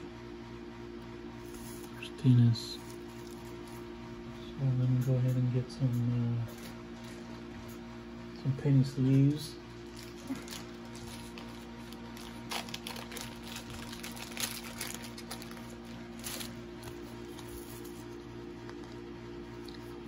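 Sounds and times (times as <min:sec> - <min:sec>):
steady low hum: 0:00.0 - 0:20.0
plastic sleeves rustling and crinkling: 0:09.8 - 0:19.9.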